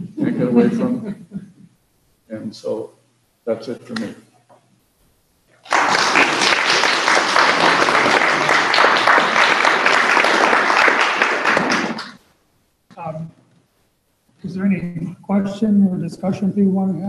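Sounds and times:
audience applauding: 5.6 - 12.2.

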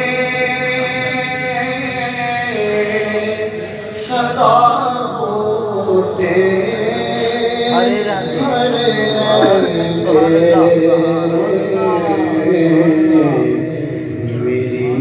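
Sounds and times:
man singing unaccompanied: 0.0 - 15.0.

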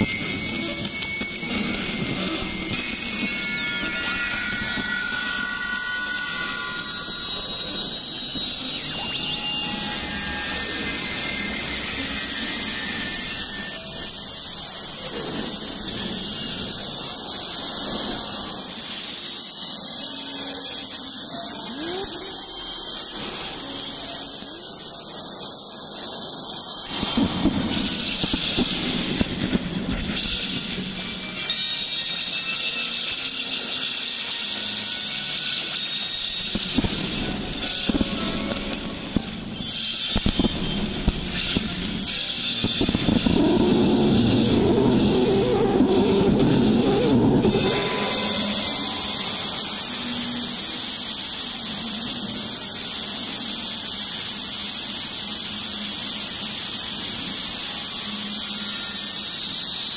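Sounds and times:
high squealing synth tone: 0.0 - 54.0.

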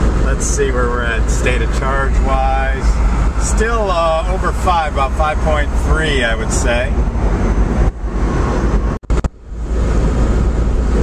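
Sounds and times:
car cabin road and wind rumble: 0.0 - 11.0.

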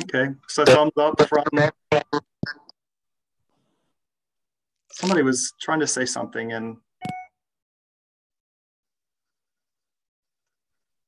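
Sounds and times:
choppy voice over video call: 0.0 - 2.8, 4.8 - 7.3.

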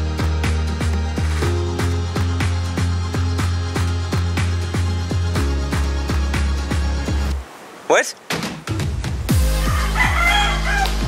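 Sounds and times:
electronic music with kick drum: 8.7 - 11.0
rooster crowing: 9.4 - 11.0.

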